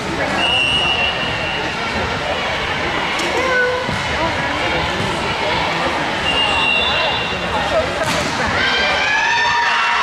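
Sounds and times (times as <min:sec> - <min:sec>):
echoing chatter of many voices: 0:00.0 - 0:10.0.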